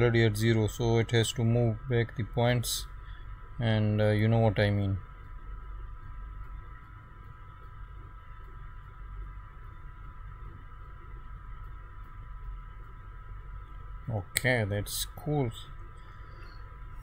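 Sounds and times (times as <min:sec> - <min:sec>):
high-pitched whine: 0:00.0 - 0:17.0
steady low hum: 0:00.0 - 0:17.0.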